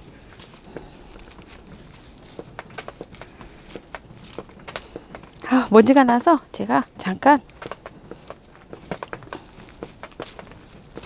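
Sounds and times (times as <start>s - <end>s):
soil pattering into plastic basin: 0.0s - 6.4s.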